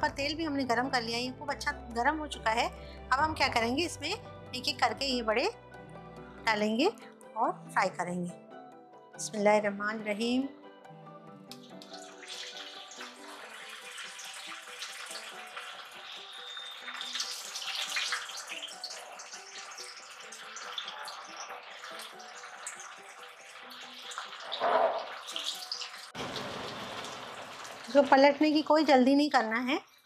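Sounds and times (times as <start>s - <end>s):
food deep-frying in hot oil: 11.6s - 29.7s.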